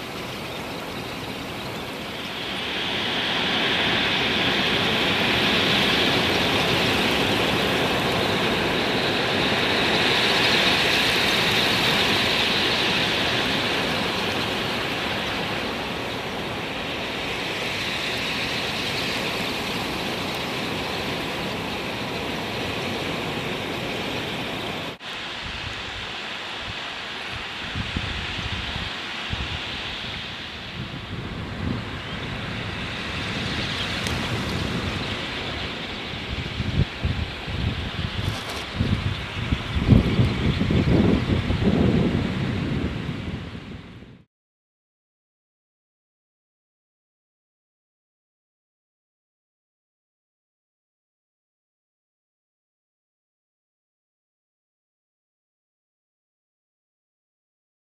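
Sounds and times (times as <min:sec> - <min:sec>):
flock of shorebirds rushing past: 0:00.0 - 0:41.7
wind buffeting microphone: 0:26.7 - 0:44.2.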